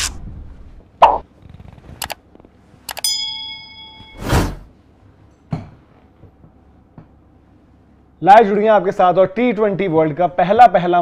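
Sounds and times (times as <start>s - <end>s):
quick clicks: 2.0s - 2.2s
bright bell-like ding: 3.0s - 4.3s.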